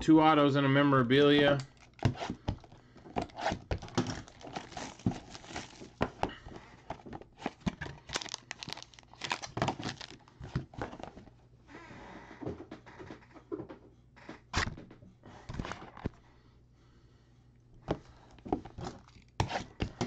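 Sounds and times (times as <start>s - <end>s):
cardboard packaging crinkling: 1.7s - 11.2s.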